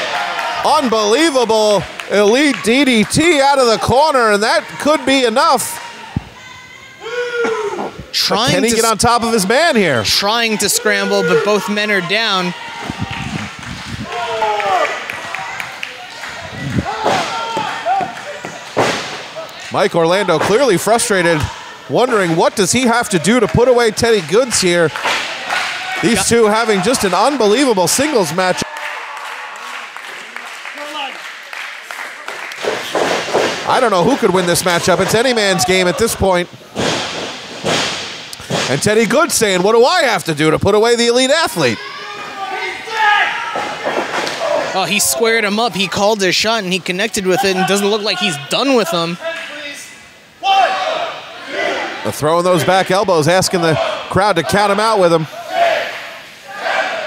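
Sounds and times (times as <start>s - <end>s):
crowd shouting in a hall: 0.0s - 8.9s, 10.1s - 23.3s, 24.9s - 33.3s, 41.6s - 45.4s, 49.2s - 52.8s, 53.4s - 54.7s, 55.3s - 57.0s.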